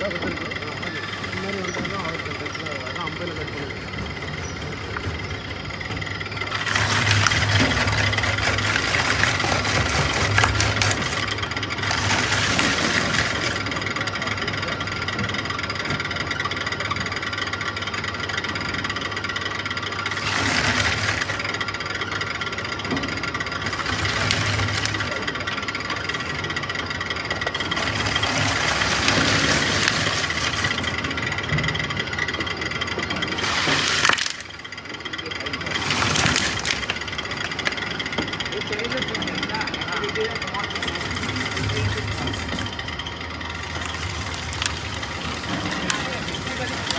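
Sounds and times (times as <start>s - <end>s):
shredder rotors whining: 0.0s - 46.9s.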